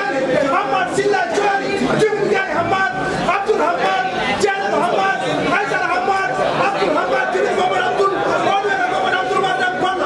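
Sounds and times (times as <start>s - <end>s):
men talking over each other: 0.0s - 10.0s.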